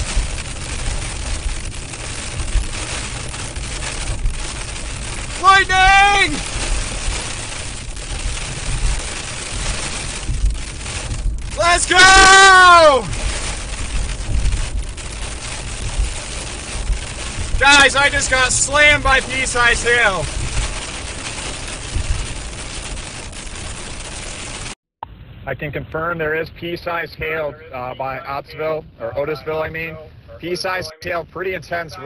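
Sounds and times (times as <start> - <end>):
rain and hail on car roof: 0.0 - 24.8
tyres and engine rumble: 0.0 - 32.0.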